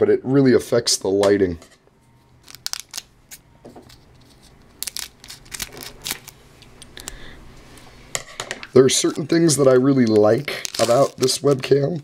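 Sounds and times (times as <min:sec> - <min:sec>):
foil wrapper crinkling and tearing: 0:02.4 - 0:06.4, 0:09.2 - 0:12.0.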